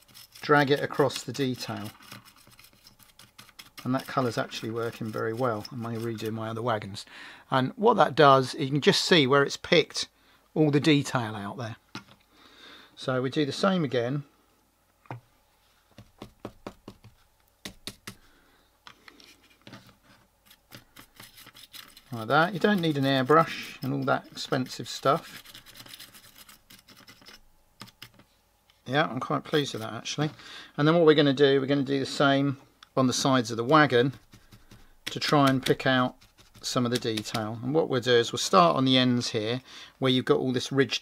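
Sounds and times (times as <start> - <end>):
paintbrush scratching plastic: 0.0 - 6.4, 20.0 - 27.4, 33.6 - 37.4
paintbrush tapping and scratching: 33.6 - 37.5.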